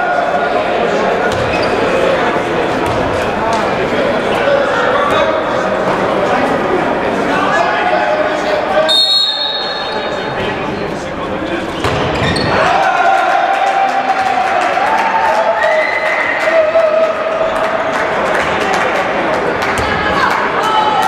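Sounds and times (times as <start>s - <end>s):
voices in echoing hall: 0.0s - 21.0s
ball bouncing on hall floor: 1.3s - 1.7s, 2.8s - 3.6s, 11.8s - 12.6s, 19.7s - 20.0s.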